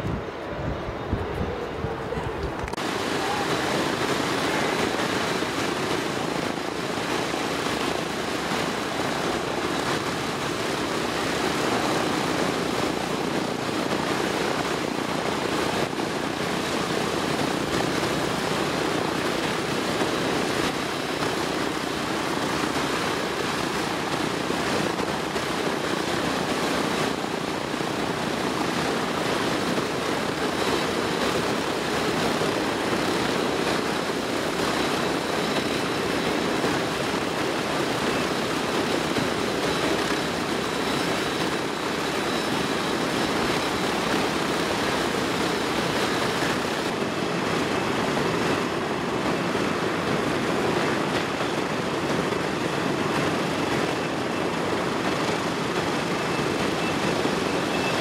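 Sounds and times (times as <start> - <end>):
radial aircraft engines running: 0.0 - 58.0.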